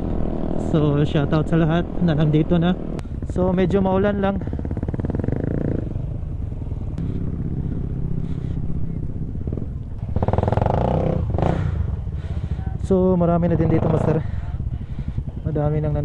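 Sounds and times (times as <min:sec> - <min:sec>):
motorcycle engine rumbling: 0:00.0 - 0:16.0.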